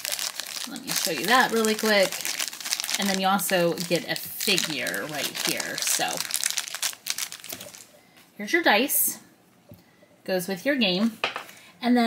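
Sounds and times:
plastic bag crinkling: 0.0 - 8.0.

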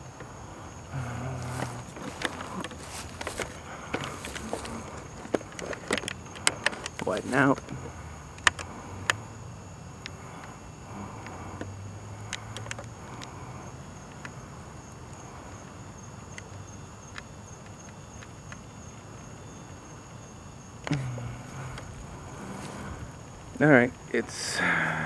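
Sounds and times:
night insects droning: 0.0 - 25.0.

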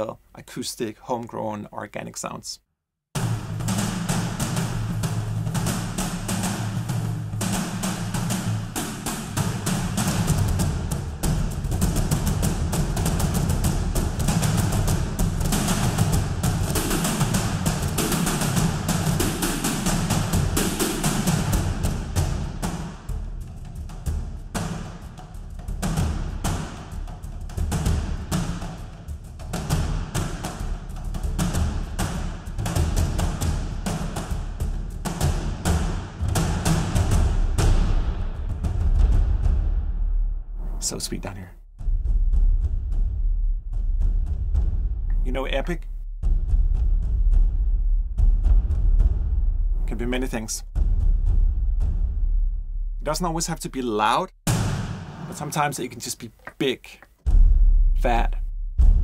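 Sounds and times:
frame drum ensemble: 3.2 - 39.9, 40.8 - 52.3, 53.0 - 59.0.

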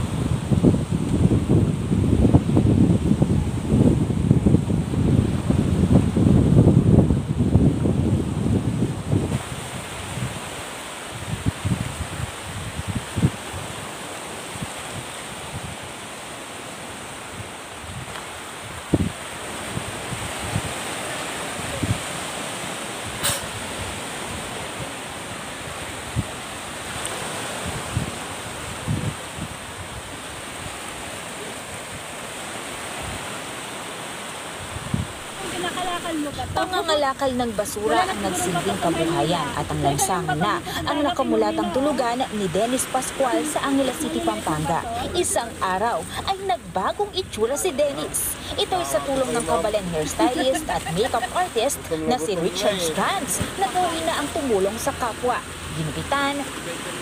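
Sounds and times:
wind buffeting microphone: 0.0 - 33.3, 34.4 - 57.0
surf on pebble beach: 0.0 - 57.0.

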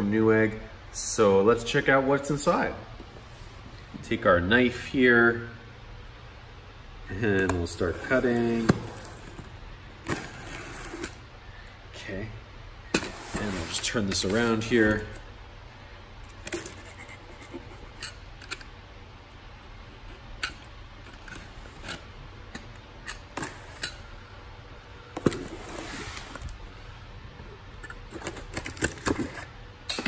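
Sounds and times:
knife rasping through cardboard: 16.4 - 18.0.

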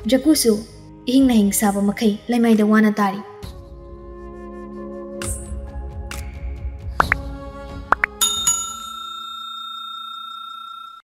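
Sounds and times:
bell-like notification chime: 8.2 - 11.0.

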